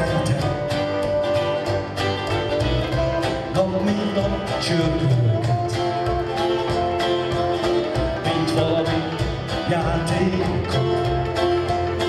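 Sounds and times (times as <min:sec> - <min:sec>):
acoustic guitar: 0:00.0 - 0:12.0
double bass: 0:00.0 - 0:12.0
fiddle: 0:00.0 - 0:12.0.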